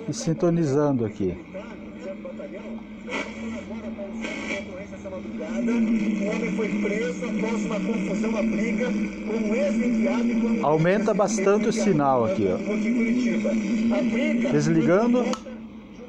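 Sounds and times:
radio hiss: 0.0 - 16.0
steady low hum: 0.0 - 16.0.

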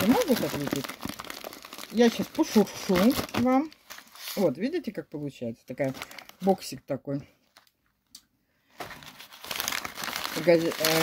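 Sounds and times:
paper wrapping crinkling: 0.0 - 4.6, 5.8 - 6.6, 8.7 - 11.0.

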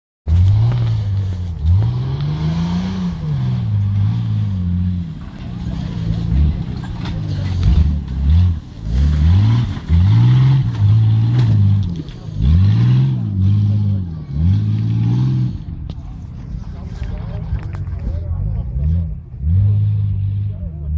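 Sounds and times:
engine revving: 0.3 - 20.9.

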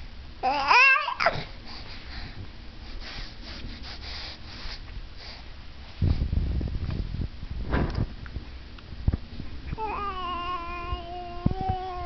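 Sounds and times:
baby sniffing: 1.3 - 5.5.

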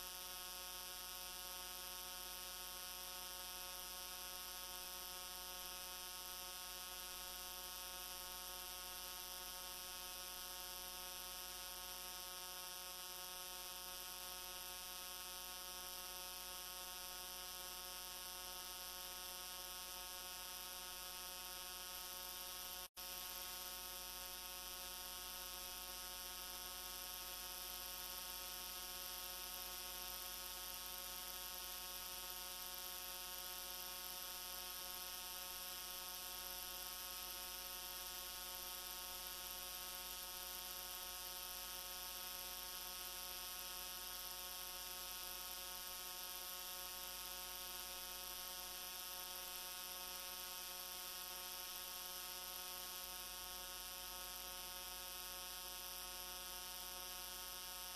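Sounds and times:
electrical hum with hiss: 0.0 - 57.9.

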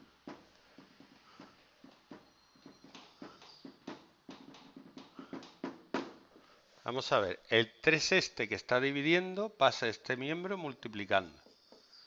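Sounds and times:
faint taps and clicks: 0.2 - 6.5
faint high squeak: 2.2 - 3.7, 11.4 - 12.0.

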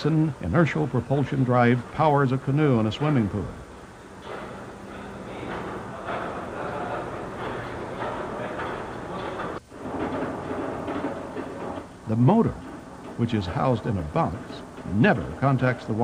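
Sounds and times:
indistinct voices echoing: 0.0 - 16.0.

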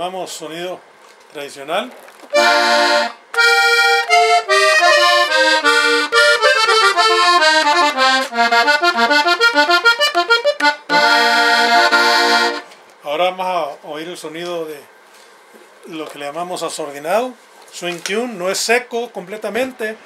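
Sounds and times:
button accordion playing melody: 2.3 - 12.8.

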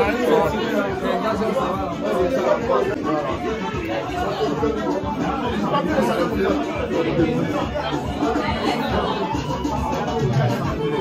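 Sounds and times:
background music: 0.0 - 11.0
indistinct chatter: 0.0 - 11.0.

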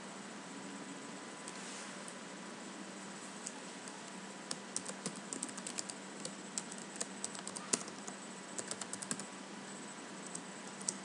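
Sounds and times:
faint hum and hiss: 0.0 - 11.0
keyboard typing clicks: 3.4 - 9.2.

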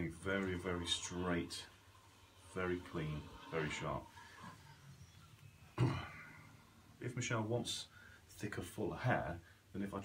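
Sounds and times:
man coughing: 5.8 - 6.4.

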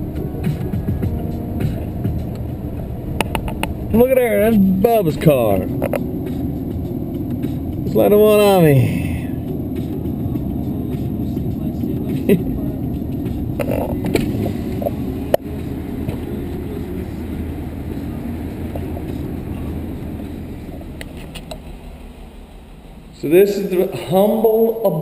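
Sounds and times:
road and engine rumble: 0.0 - 25.0.

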